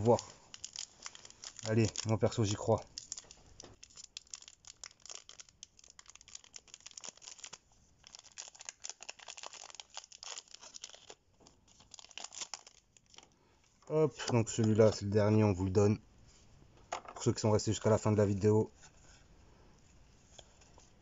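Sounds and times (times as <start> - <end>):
foil wrapper crinkling: 0.0 - 13.3.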